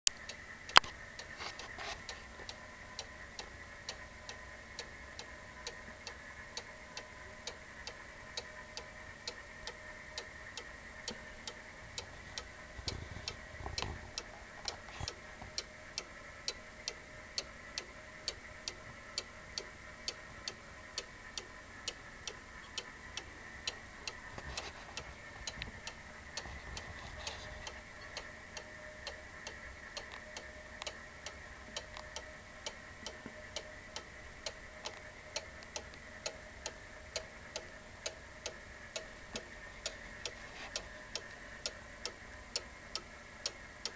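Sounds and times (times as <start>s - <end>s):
clock ticking: 0.1s - 43.9s.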